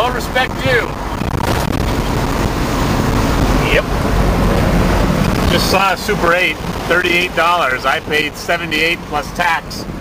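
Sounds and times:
road and wind noise in car: 0.0s - 10.0s.

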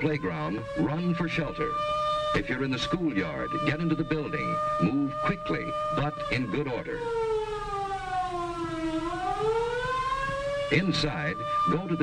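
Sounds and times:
air-raid siren wailing: 0.0s - 12.0s.

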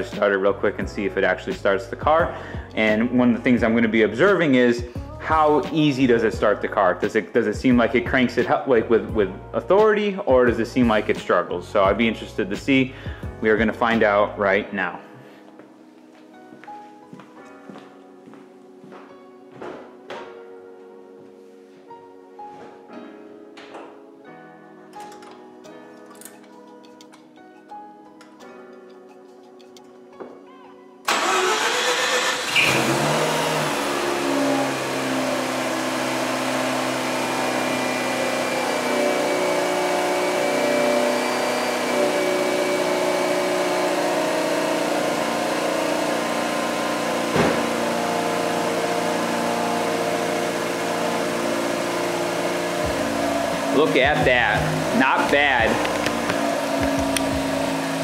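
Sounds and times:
quiet background music: 0.0s - 32.5s, 46.9s - 58.0s
rotary engine starting and idling: 31.1s - 40.4s.

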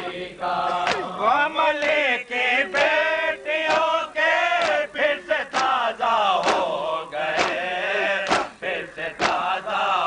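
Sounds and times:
men chanting together: 0.0s - 10.0s
hands slapping chests: 3.6s - 3.9s, 4.6s - 4.8s, 5.5s - 5.8s, 6.4s - 7.6s, 8.2s - 8.6s, 9.2s - 9.5s.

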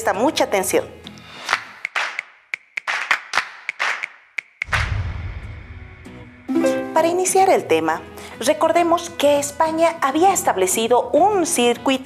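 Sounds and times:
sharp percussive hits and swishes: 1.8s - 7.0s
deep boom: 4.6s - 6.6s.

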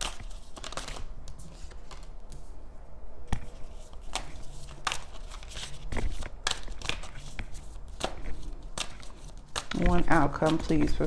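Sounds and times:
cards being shuffled: 0.0s - 2.4s, 3.3s - 11.0s.

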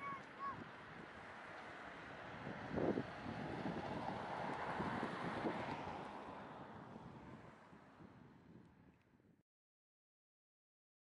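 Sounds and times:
wind buffeting microphone: 2.3s - 8.9s.

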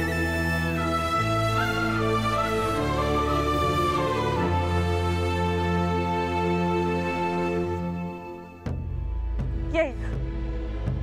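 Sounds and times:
slow sad orchestral score: 0.0s - 9.6s.

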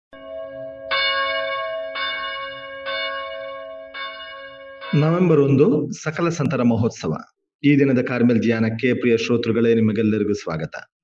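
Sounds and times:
church bells ringing: 0.1s - 6.4s.

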